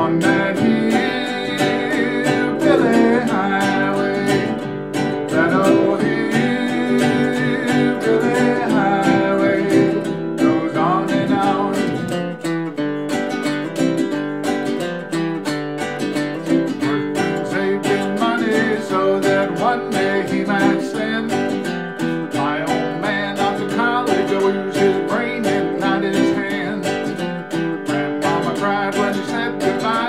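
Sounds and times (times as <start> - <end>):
man singing: 0.0 - 12.5, 16.4 - 30.0
ukulele strumming: 0.0 - 30.0.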